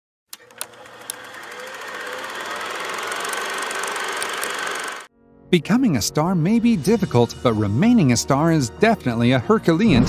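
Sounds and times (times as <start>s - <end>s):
film projector clattering: 0.4s - 5.1s.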